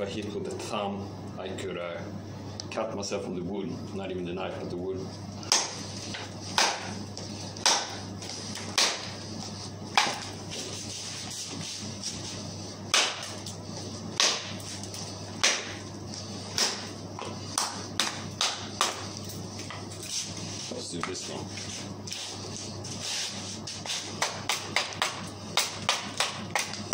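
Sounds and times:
knife chopping wood: 5.5s - 5.8s, 6.6s - 6.9s, 7.6s - 8.0s, 8.6s - 9.1s, 9.9s - 10.2s, 12.9s - 13.3s, 14.2s - 14.6s, 15.4s - 15.8s, 16.5s - 16.9s, 24.2s - 26.9s.

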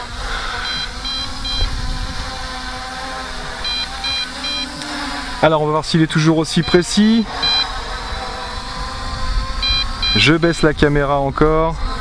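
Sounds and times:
drone propellers humming: 0.0s - 12.0s
short high beeps: 0.6s - 1.7s, 3.6s - 4.8s, 6.6s - 7.8s, 9.6s - 10.7s.

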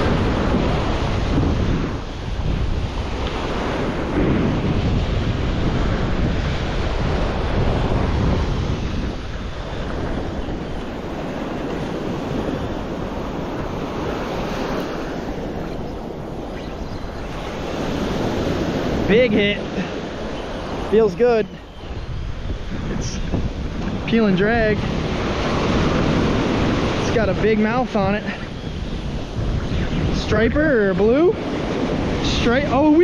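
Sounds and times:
ocean surf washing onto beach: 0.0s - 33.0s
wind buffeting microphone: 0.0s - 33.0s.

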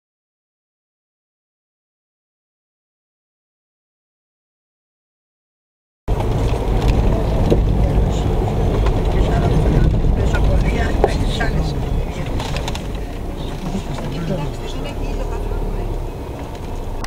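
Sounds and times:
car driving on gravel: 6.1s - 17.0s.

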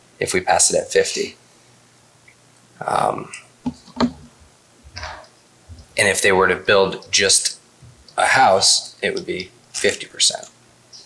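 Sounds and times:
footsteps on wooden floor: 4.9s - 5.9s.

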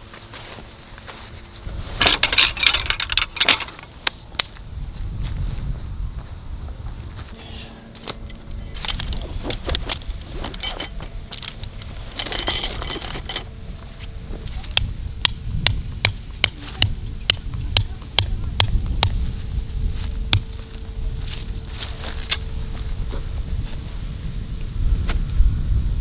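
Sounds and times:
metal tent pegs jangling: 2.0s - 4.0s, 7.9s - 13.5s, 21.3s - 22.6s.

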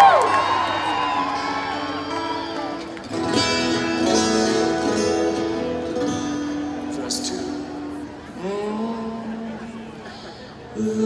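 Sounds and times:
twelve-string guitar chords over pa: 1.7s - 9.7s.

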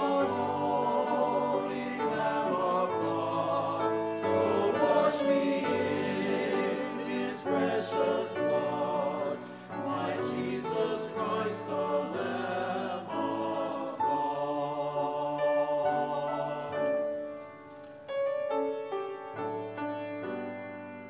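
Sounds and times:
men's chorus singing: 0.0s - 17.2s
piano accompaniment: 0.0s - 21.0s.

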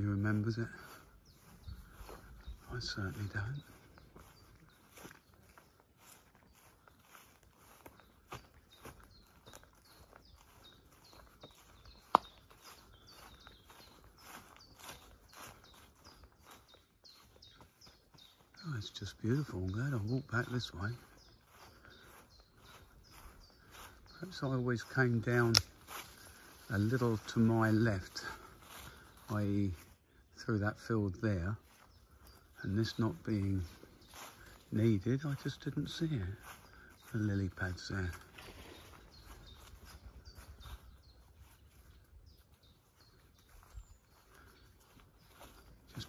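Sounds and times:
faint high bird chirps: 0.0s - 29.9s, 31.3s - 46.0s.

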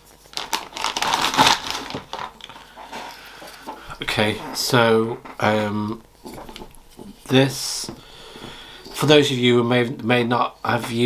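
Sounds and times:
plastic packaging crinkling: 0.0s - 7.8s.

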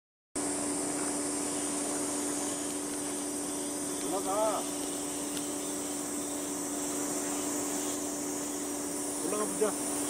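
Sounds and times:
steady background hum and hiss: 0.4s - 10.0s.

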